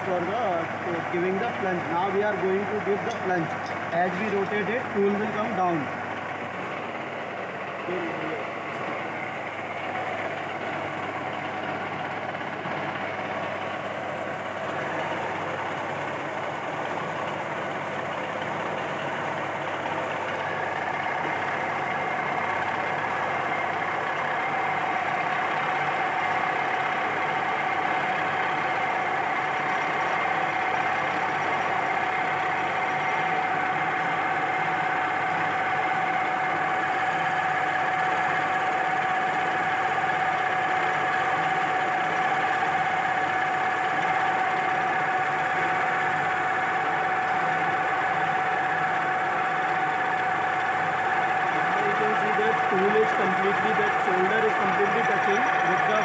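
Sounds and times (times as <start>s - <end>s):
welding machine hum and whine: 0.0s - 56.0s.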